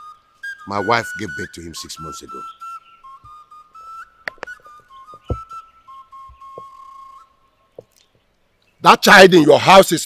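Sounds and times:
high whistle-like music note: 0.0s - 7.3s
faint soft taps: 5.1s - 5.5s, 6.2s - 6.8s.

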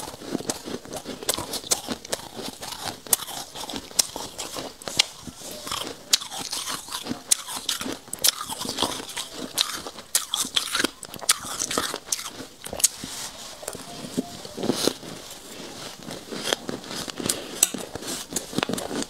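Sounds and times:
crunchy chewing of ice: 0.0s - 13.4s, 15.2s - 19.0s.

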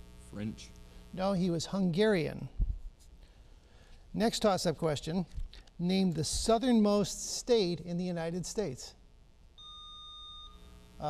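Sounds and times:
electronic buzzer beep: 9.6s - 11.0s.

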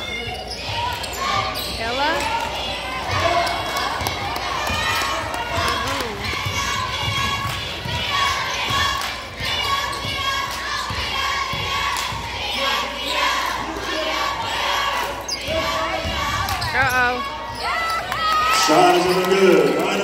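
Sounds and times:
sneaker squeaks: 0.0s - 4.1s, 5.6s - 11.7s, 12.4s - 13.8s, 15.0s - 18.1s
voices in echoing hall: 0.0s - 20.0s.

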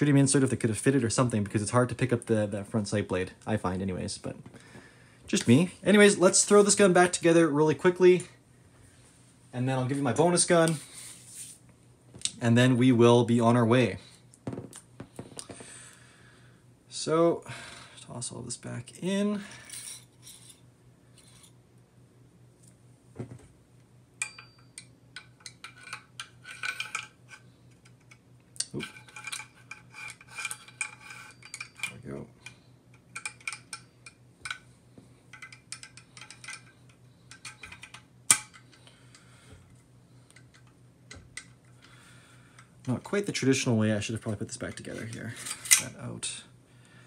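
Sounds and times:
metal rifle parts clicking: 24.2s - 34.6s, 35.3s - 39.2s, 44.6s - 46.0s.

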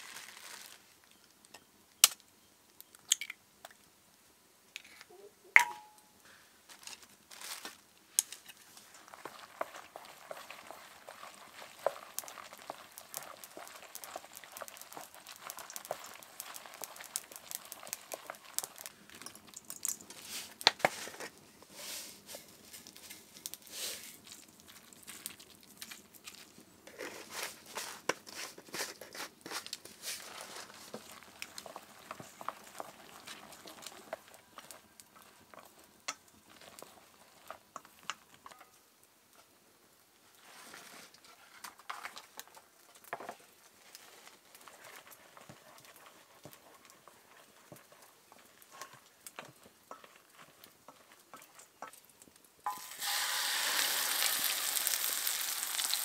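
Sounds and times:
egg and flowers squishing: 5.7s - 38.7s, 41.4s - 56.0s.

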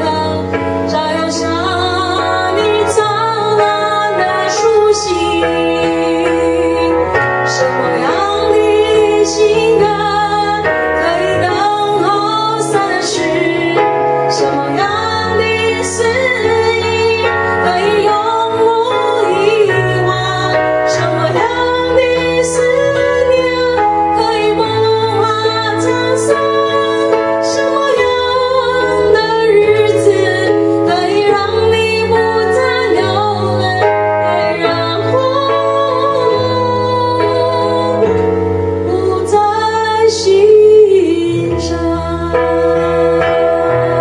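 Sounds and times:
electronic keyboard chords: 0.0s - 44.0s
woman singing into microphone: 0.0s - 44.0s.

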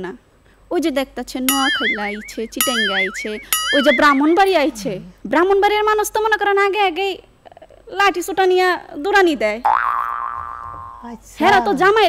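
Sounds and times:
springy comic twang: 1.5s - 4.4s, 9.7s - 11.1s.

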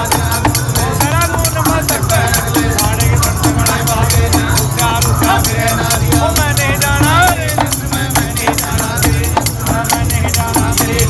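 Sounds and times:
devotional folk singing: 0.0s - 11.0s
hand drums: 0.0s - 11.0s.

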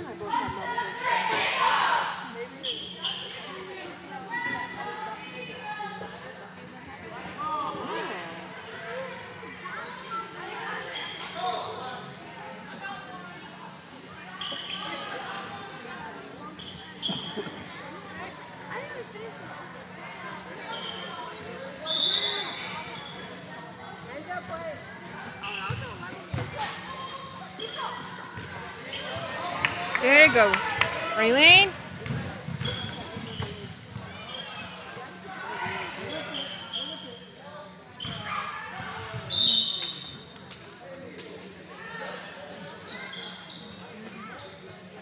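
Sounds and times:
spectators chatting: 0.0s - 45.0s
sneaker squeaks: 2.6s - 4.8s, 8.4s - 9.9s, 10.7s - 11.7s, 14.2s - 15.6s, 16.4s - 17.7s, 20.6s - 30.4s, 31.3s - 40.4s, 42.8s - 44.9s.

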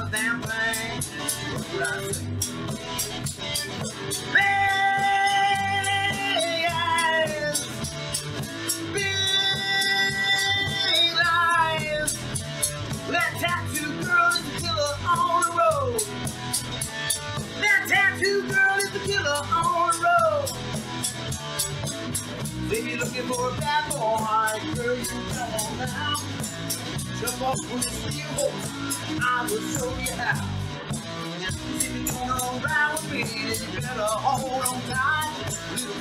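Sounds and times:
person singing: 0.0s - 2.5s, 4.1s - 8.0s, 8.7s - 12.4s, 13.0s - 16.2s, 17.6s - 20.7s, 22.7s - 36.0s
acoustic guitar: 0.0s - 36.0s
bass guitar: 0.0s - 36.0s
steady percussive beat: 0.0s - 36.0s.

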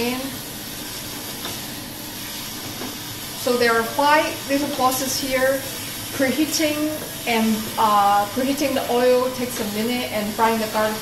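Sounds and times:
meat frying in hot oil: 0.0s - 11.0s.

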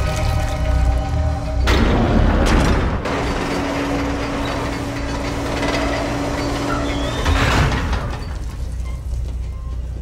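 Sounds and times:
machine hum: 0.0s - 10.0s.

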